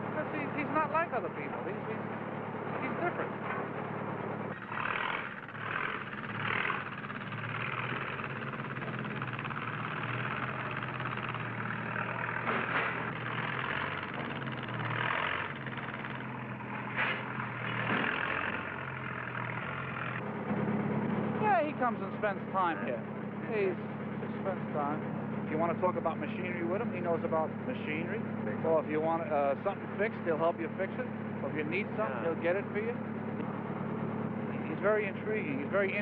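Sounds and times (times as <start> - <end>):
crane engine running: 0.0 - 36.0.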